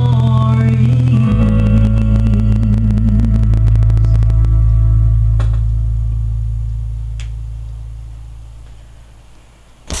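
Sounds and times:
low note of karaoke backing track: 0.0s - 10.0s.

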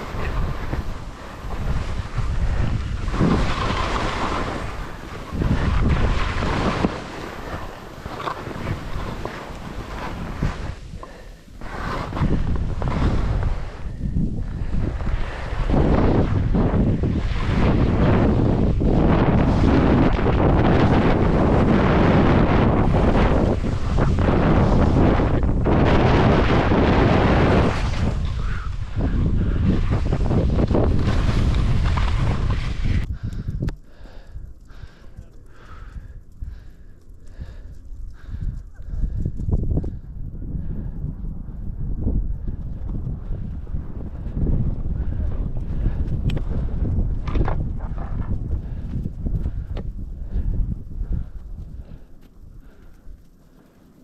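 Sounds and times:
skis scraping through snow: 0.0s - 33.1s
wind rushing over microphone: 0.0s - 53.3s.

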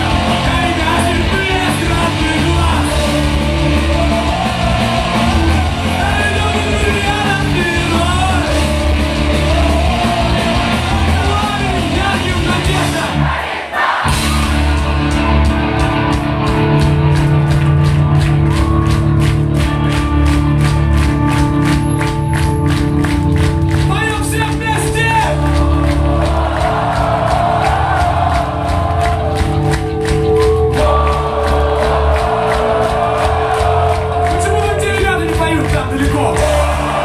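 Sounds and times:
bass guitar: 0.0s - 13.4s, 14.0s - 37.0s
electric guitars: 0.0s - 13.4s, 14.0s - 37.0s
drums: 0.0s - 37.0s.

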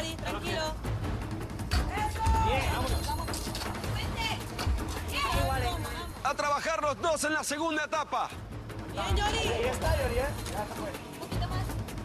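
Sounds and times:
people shouting encouragement: 1.9s - 3.0s.

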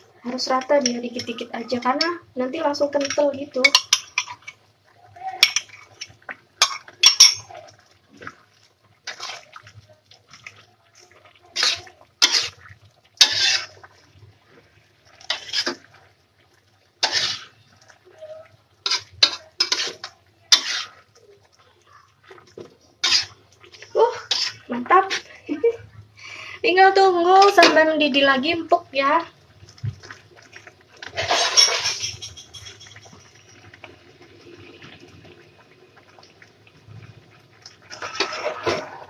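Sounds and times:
spatula scraping a wok: 9.1s - 9.5s, 11.5s - 13.9s, 15.2s - 15.9s, 17.0s - 17.7s, 18.8s - 21.1s, 23.0s - 25.4s, 31.0s - 33.2s, 37.9s - 39.0s.

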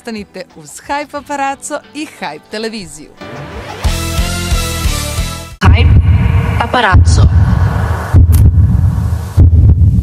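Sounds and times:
deep booming bass hits: 5.6s - 10.0s.

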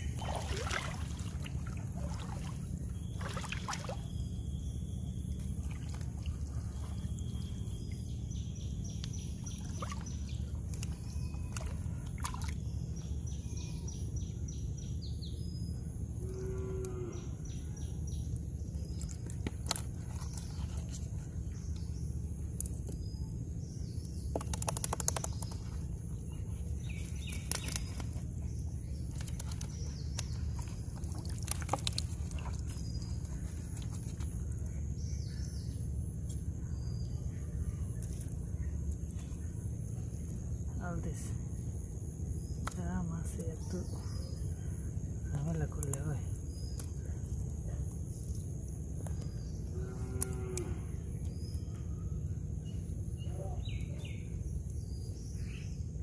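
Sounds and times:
water splashes and rustles: 0.0s - 8.3s, 9.0s - 13.0s, 18.6s - 23.1s, 24.1s - 34.9s
steady low rumble: 0.0s - 56.0s.

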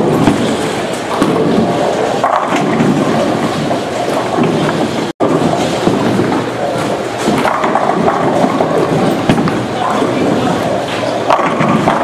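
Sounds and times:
bowling balls rumbling: 0.0s - 12.0s
bowling pins crashing: 0.0s - 12.0s.

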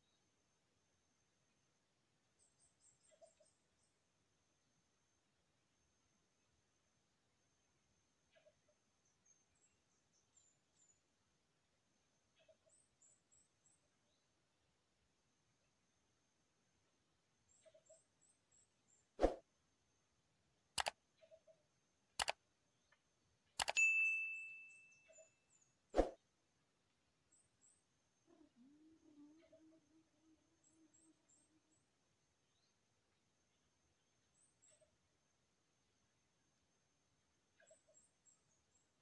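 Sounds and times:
sharp clicks: 20.8s - 21.0s, 22.2s - 22.4s, 23.6s - 23.8s
high metallic ring: 23.8s - 25.3s
faint bird calls: 28.2s - 31.8s.

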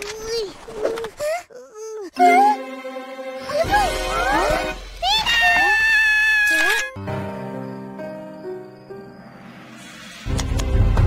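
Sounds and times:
cartoon child wailing: 1.7s - 2.7s, 3.4s - 7.0s.

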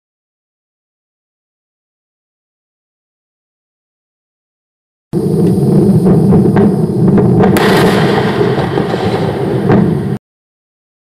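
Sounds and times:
crackling: 5.2s - 10.2s
rocket explosion rumbling blast: 5.2s - 10.2s
sharp crack: 6.3s - 10.2s.

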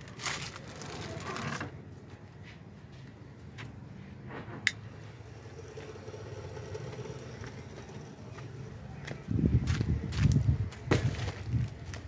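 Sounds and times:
engine humming: 3.0s - 12.0s.

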